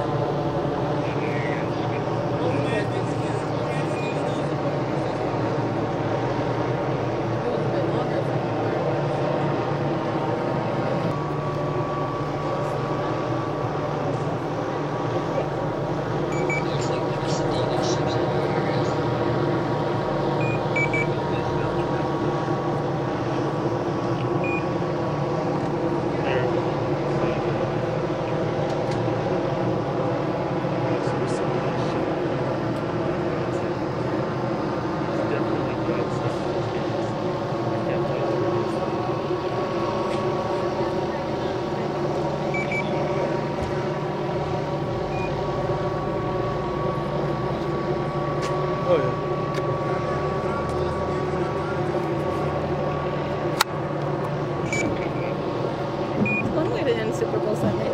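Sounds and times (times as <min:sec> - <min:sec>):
vehicle engines idling: 0:00.0 - 0:57.9.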